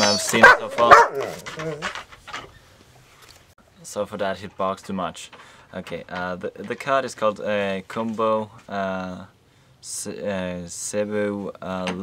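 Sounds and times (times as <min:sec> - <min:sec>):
dog barking and whining: 0:00.0 - 0:02.0.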